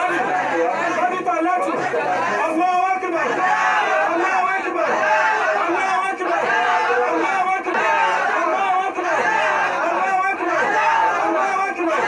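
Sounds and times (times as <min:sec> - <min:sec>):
crowd voices: 0:00.0 - 0:12.0
man praying into a microphone: 0:00.0 - 0:12.0.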